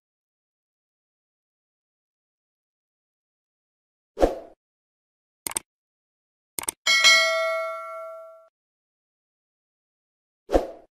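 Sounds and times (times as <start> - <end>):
bright bell ding: 6.9 - 8.5.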